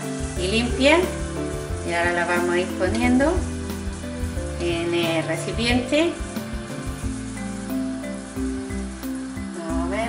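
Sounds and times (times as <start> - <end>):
background music with held notes: 0.0 - 10.0
liquid sizzling in a pot: 0.0 - 10.0.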